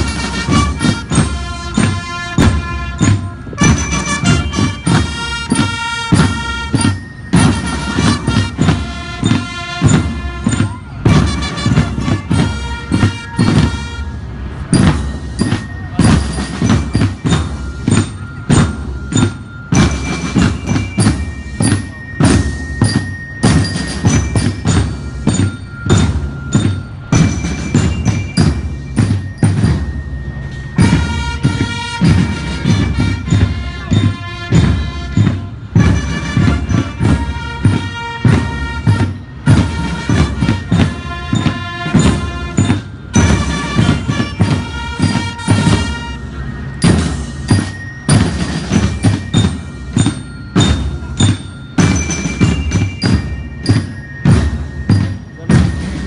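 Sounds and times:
bass and snare drums: 0:00.0 - 0:56.0
bell lyres ringing: 0:00.0 - 0:56.0
marching band playing: 0:00.0 - 0:56.0.

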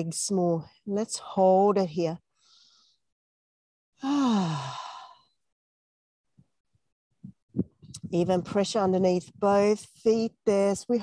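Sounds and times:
woman sighing: 0:04.0 - 0:05.2.

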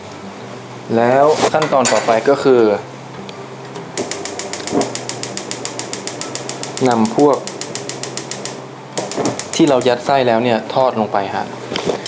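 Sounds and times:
gas stove igniter clicking: 0:03.9 - 0:10.2.

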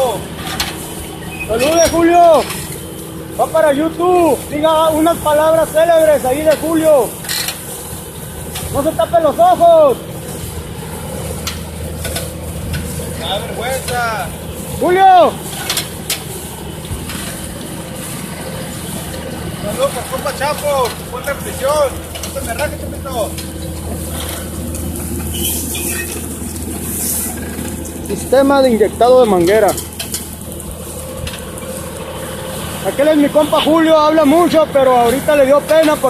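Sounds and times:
tractor engine running: 0:00.0 - 0:36.0
brief squeaks: 0:25.3 - 0:26.2.

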